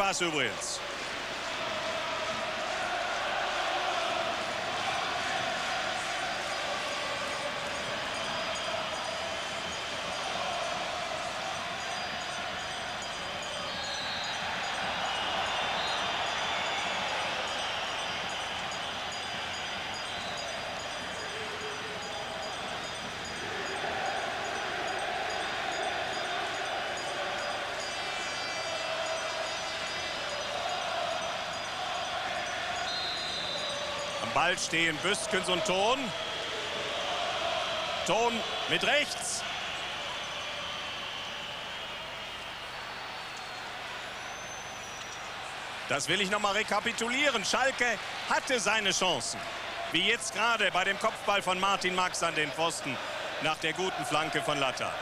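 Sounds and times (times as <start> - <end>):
crowd chanting: 0.0 - 55.0
stadium crowd din: 0.0 - 55.0.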